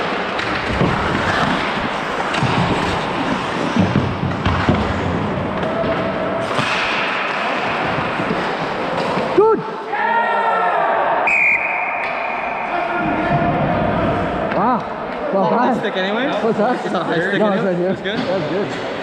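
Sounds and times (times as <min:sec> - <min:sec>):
skates scraping on ice: 0:00.0 - 0:09.4
players shouting: 0:05.5 - 0:15.9
sharp puck hit: 0:06.4 - 0:07.4
referee's whistle blast: 0:11.2 - 0:12.5.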